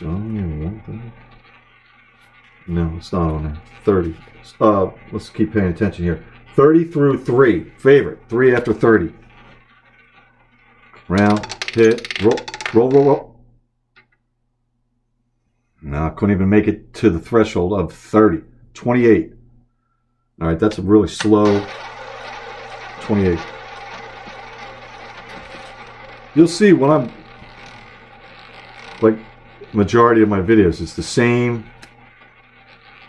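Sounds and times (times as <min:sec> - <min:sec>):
roulette ball whirring: 0:00.0 - 0:13.4, 0:21.2 - 0:33.0.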